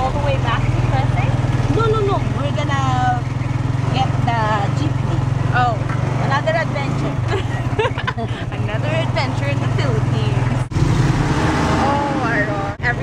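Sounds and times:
people talking: 0.0s - 3.3s, 3.9s - 10.7s, 11.8s - 13.0s
vehicle engine running: 0.0s - 13.0s.

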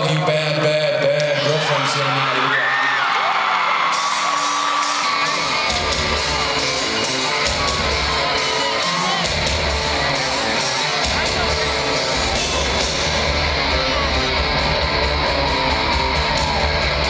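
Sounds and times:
crowd cheering and whooping: 0.0s - 17.0s
live rock band: 3.8s - 17.0s.

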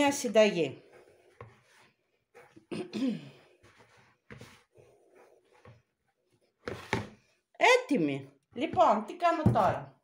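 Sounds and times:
person sighing: 2.7s - 3.5s.

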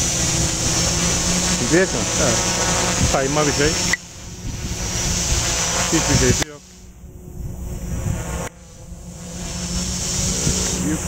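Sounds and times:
drone motors buzzing: 0.0s - 11.0s.

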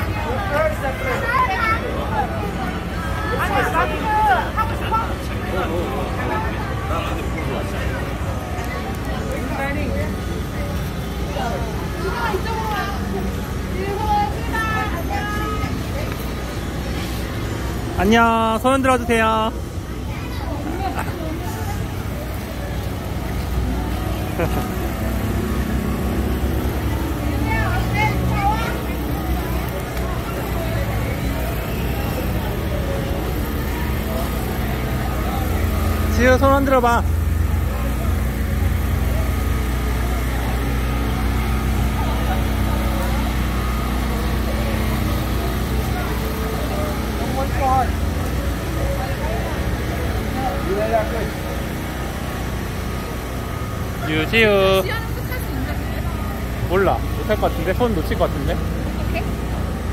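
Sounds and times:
faint voices of people: 0.0s - 18.5s, 19.1s - 59.9s
crowd chatter: 0.0s - 59.9s.

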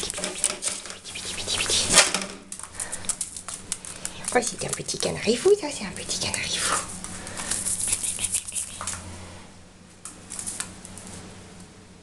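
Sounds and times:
quick scrabbling clicks: 0.0s - 2.4s.

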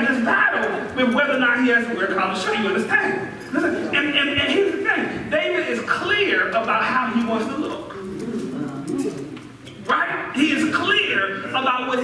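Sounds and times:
man speaking: 0.0s - 9.1s
low murmured voice: 7.9s - 9.8s.

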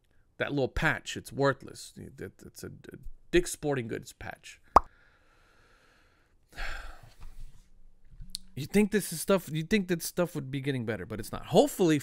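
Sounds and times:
man sighing: 6.6s - 7.0s.

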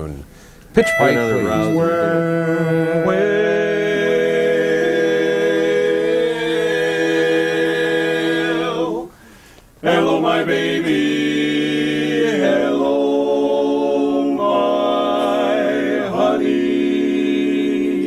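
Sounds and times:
men singing a cappella harmony: 1.2s - 18.0s.

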